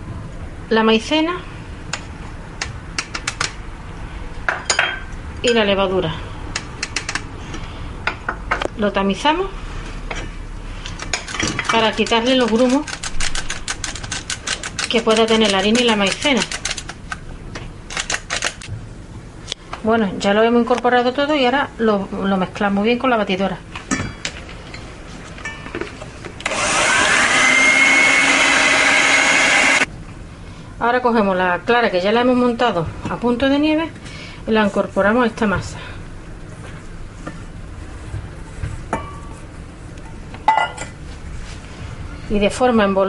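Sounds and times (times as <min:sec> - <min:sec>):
electric hand mixer whine: 0:26.4 - 0:29.9.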